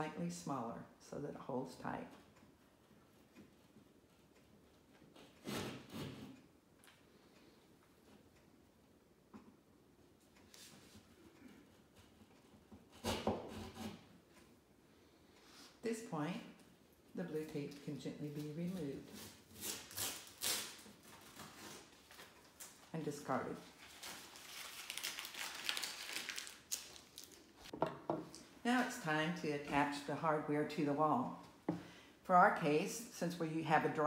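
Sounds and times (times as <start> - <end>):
tape crinkling: 19.2 - 22.9, 23.7 - 27.7.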